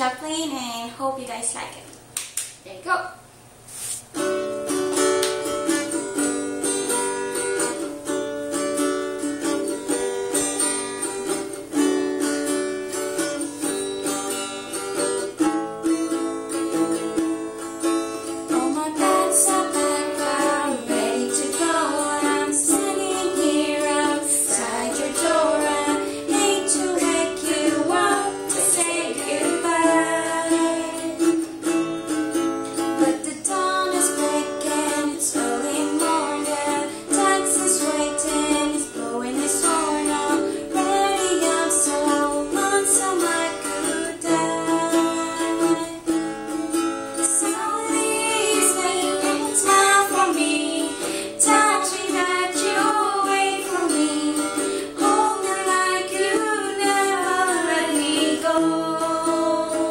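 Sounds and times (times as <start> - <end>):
acoustic guitar strumming chords: 4.1 - 59.9
girl singing: 16.0 - 31.7, 32.7 - 46.3, 47.1 - 59.9.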